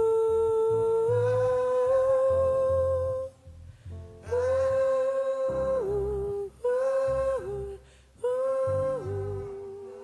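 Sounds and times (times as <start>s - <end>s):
person humming: 0.0s - 3.4s, 4.2s - 10.0s
low bass notes: 0.0s - 9.7s.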